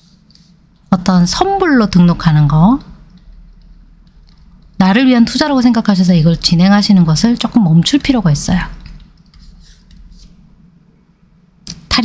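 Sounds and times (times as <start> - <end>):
faint low room hum: 0.0 - 12.0
woman speaking: 0.9 - 3.1, 4.8 - 9.1, 11.7 - 12.0.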